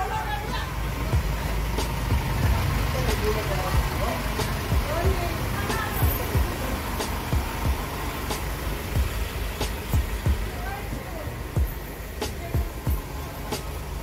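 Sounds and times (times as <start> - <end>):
background music: 0.0 - 14.0
kick drum thumps: 4.7 - 5.3, 6.0 - 6.6, 7.3 - 7.9, 9.8 - 10.5, 11.6 - 11.8, 12.6 - 13.1.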